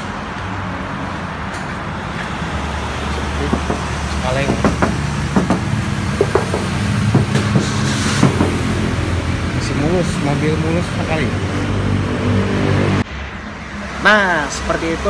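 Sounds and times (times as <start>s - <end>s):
traffic noise: 0.0s - 15.0s
vehicle engine rumble: 0.0s - 15.0s.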